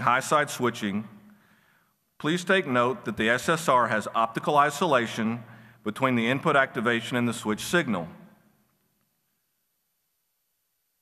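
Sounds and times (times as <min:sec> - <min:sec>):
man narrating: 0:00.0 - 0:01.2, 0:02.2 - 0:08.2.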